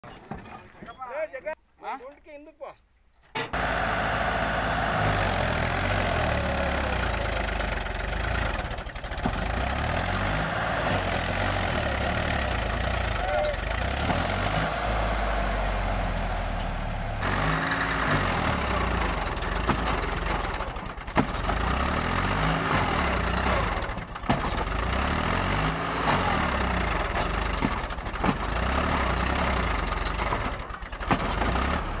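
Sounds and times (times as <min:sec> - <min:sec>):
tractor diesel engine straining: 0:00.0 - 0:01.6, 0:03.2 - 0:32.0.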